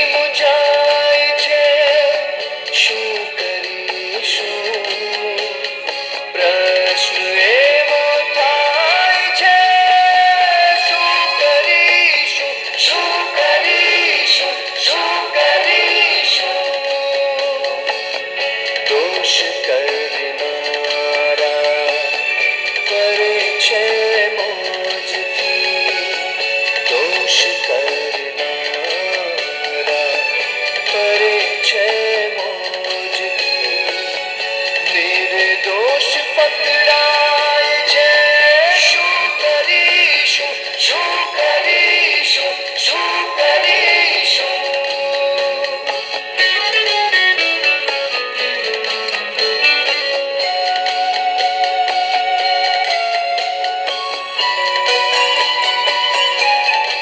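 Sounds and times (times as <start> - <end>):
film song through tv speaker: 0.0 - 57.0
instrumental backing music: 0.0 - 57.0.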